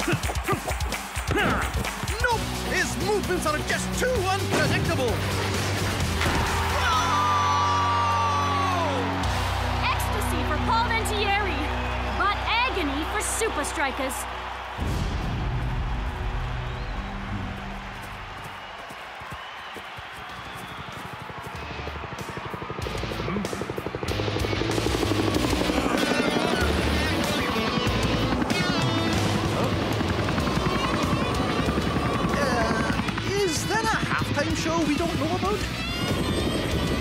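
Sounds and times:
background music: 0.0s - 18.4s, 21.2s - 37.0s
helicopter rotor chopping: 17.8s - 37.0s.

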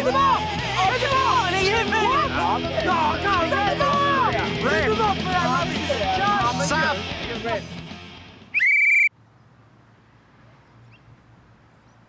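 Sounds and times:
referee's whistle blast: 8.6s - 9.1s.

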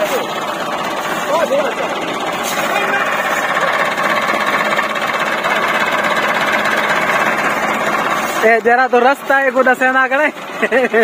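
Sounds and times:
tractor diesel engine running: 0.0s - 11.0s.

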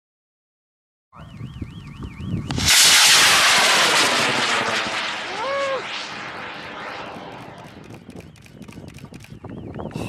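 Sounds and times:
low rumble: 2.5s - 8.2s
rocket motor roaring: 2.5s - 8.2s.

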